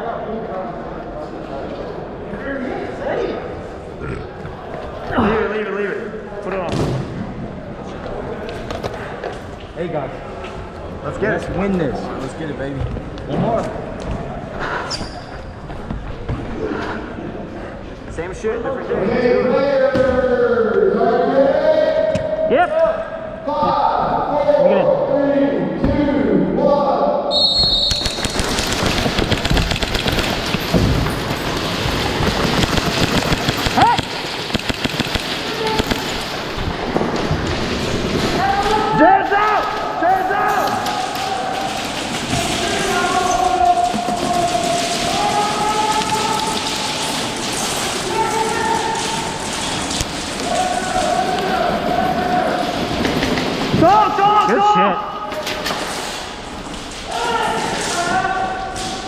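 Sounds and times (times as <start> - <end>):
players' voices: 0.0 - 59.0
airsoft gunfire: 27.6 - 36.4
pellets pattering on walls: 27.7 - 54.2.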